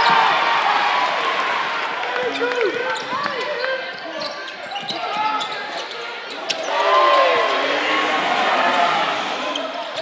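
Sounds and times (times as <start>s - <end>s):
crowd voices: 0.0s - 10.0s
sneakers squeaking on court: 2.9s - 6.7s.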